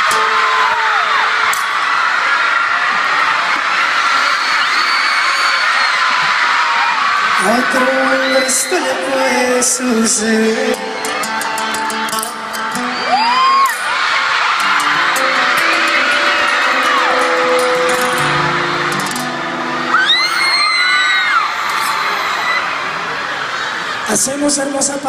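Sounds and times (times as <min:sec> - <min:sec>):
crowd screaming and cheering: 0:00.0 - 0:25.0
high-pitched shrieks: 0:14.6 - 0:23.7
soft music over sound system: 0:14.8 - 0:20.7.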